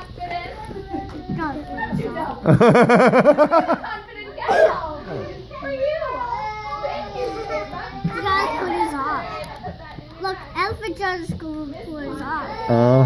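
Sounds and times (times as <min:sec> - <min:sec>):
young children chattering: 0:00.0 - 0:02.6, 0:03.3 - 0:13.0.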